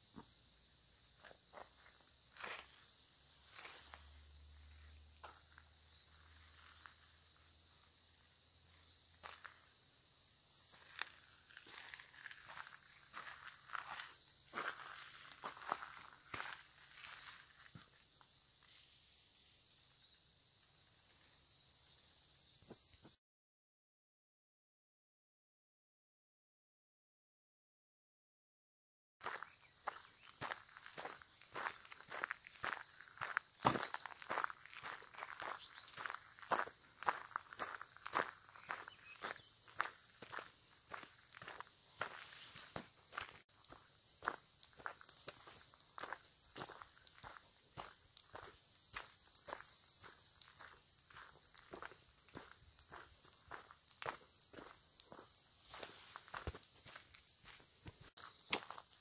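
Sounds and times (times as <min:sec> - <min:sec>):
footsteps on gravel: 0:04.9 - 0:07.4, 0:09.2 - 0:09.6, 0:10.7 - 0:18.0, 0:29.2 - 0:59.0.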